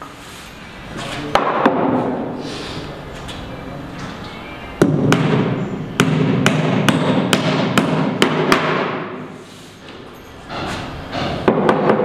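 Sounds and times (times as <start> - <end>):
hammer driving nails into wood: 4.8 - 9.2, 10.5 - 12.0.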